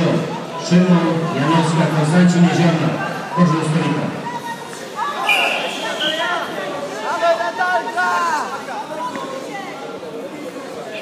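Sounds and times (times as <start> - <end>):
voices calling out echoing hall: 0.0 - 11.0.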